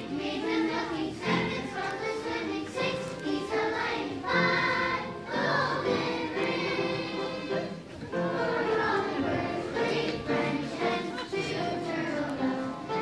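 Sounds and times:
accompanying music: 0:00.0 - 0:13.0
children's choir singing: 0:00.0 - 0:13.0.

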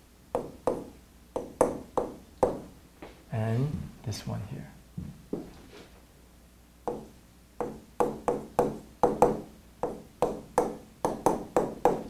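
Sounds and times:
pen tapping on writing board: 0:00.4 - 0:02.7, 0:06.9 - 0:12.0.

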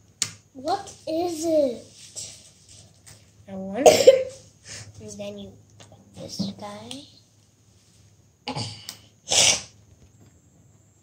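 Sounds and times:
person sneezing: 0:08.5 - 0:09.8.

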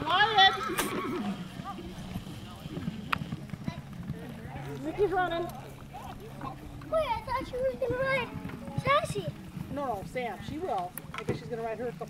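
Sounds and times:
faint voices: 0:00.0 - 0:12.0
horse hoofbeats on sand: 0:00.0 - 0:12.0.

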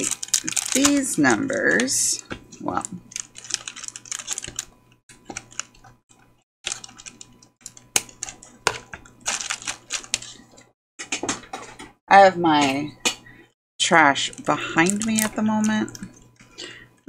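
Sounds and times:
plastic packaging crinkling: 0:00.0 - 0:02.1, 0:02.7 - 0:05.9, 0:06.6 - 0:10.7, 0:14.2 - 0:16.1.

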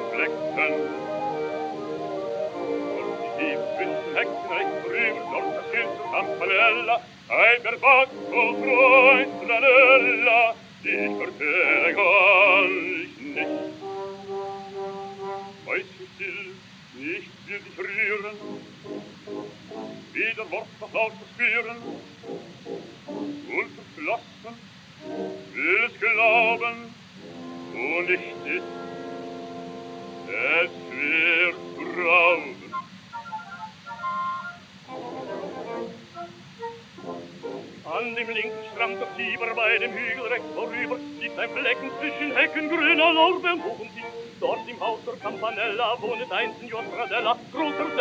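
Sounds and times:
orchestral held chord: 0:00.0 - 0:07.0, 0:08.0 - 0:15.8, 0:18.1 - 0:20.2, 0:25.0 - 0:45.6
record surface hiss: 0:00.0 - 0:48.0.

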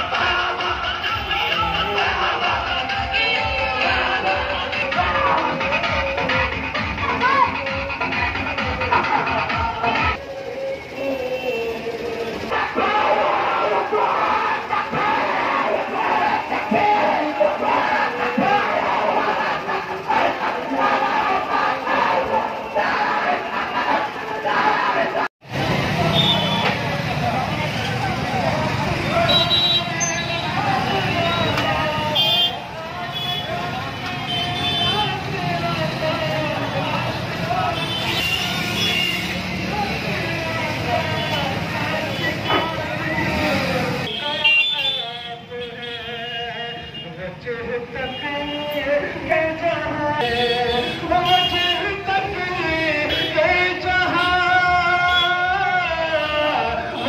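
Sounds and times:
crowd of voices: 0:00.0 - 0:57.0
motorcycle engines droning: 0:00.0 - 0:57.0.

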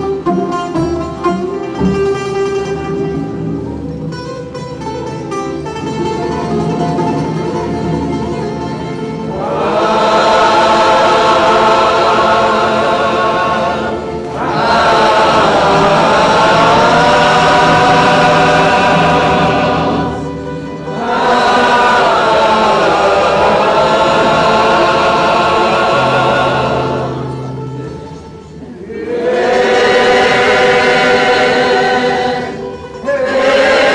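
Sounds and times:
mixed choir singing: 0:08.6 - 0:33.9.

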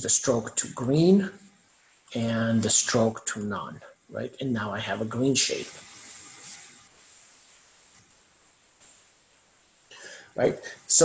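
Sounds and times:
speech: 0:00.0 - 0:01.4, 0:02.1 - 0:05.8, 0:10.4 - 0:11.0
faint microphone hiss: 0:00.0 - 0:11.0.

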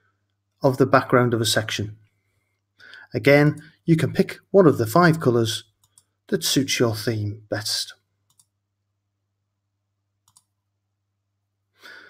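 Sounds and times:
breath: 0:02.2 - 0:03.1, 0:11.7 - 0:12.0
computer mouse clicks: 0:05.7 - 0:06.2, 0:08.3 - 0:08.6, 0:10.2 - 0:10.6.

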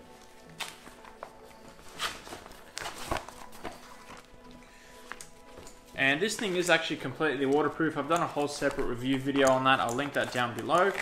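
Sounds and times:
faint background music: 0:00.0 - 0:11.0
paper rustling in plastic case: 0:00.1 - 0:11.0.

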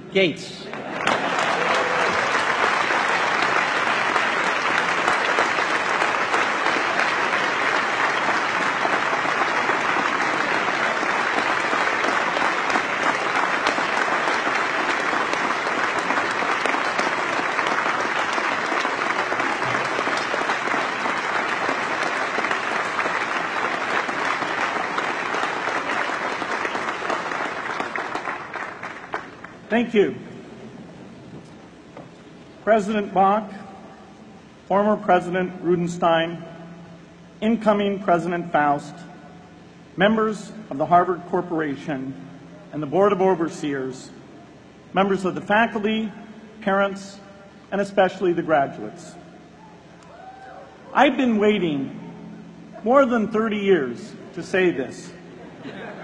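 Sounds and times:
large audience applauding: 0:00.7 - 0:29.6.

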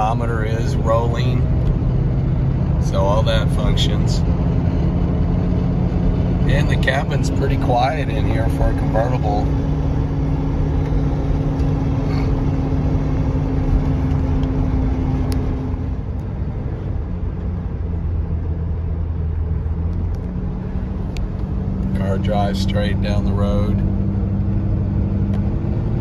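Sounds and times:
car engine running: 0:00.0 - 0:26.0
road and tyre rumble: 0:00.0 - 0:26.0.

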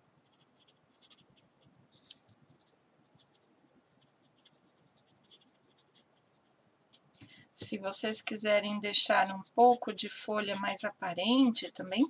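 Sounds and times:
marker pen scratching on paper: 0:00.0 - 0:12.0.

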